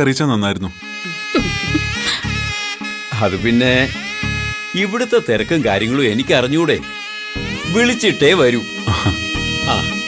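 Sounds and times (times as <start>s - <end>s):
person speaking: 1.1s - 2.3s.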